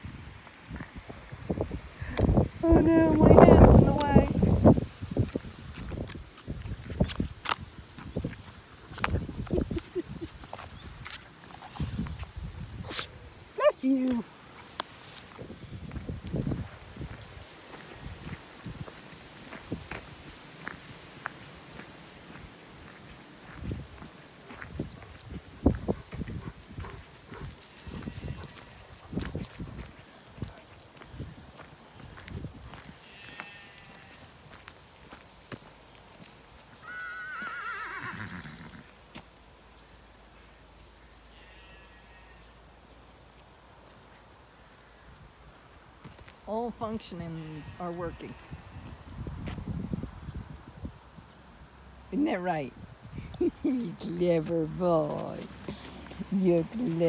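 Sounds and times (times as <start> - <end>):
footsteps on grassy path: 0.0 - 36.8, 45.6 - 50.8, 53.3 - 57.0
farm animal calling: 26.4 - 29.1, 33.0 - 34.4, 36.8 - 39.0, 41.2 - 42.6, 46.8 - 49.1.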